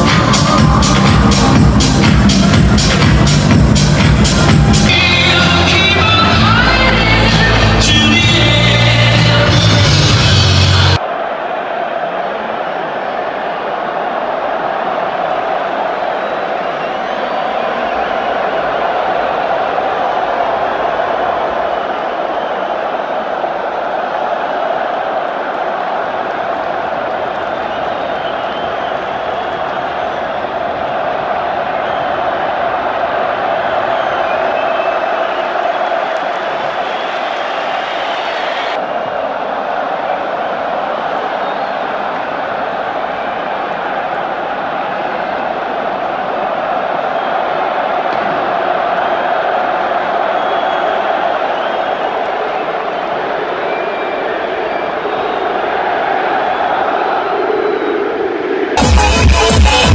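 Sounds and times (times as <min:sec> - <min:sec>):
stadium crowd cheering: 0:00.0 - 0:59.9.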